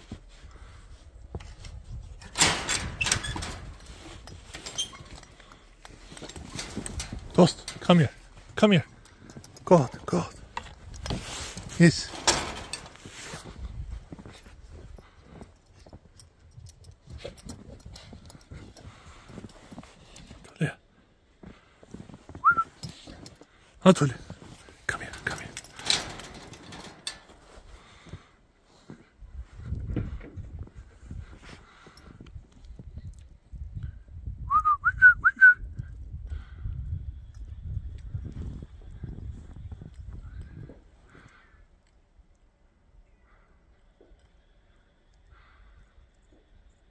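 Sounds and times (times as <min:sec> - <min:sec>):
person whistling rising chirps: 0:22.4 - 0:22.7.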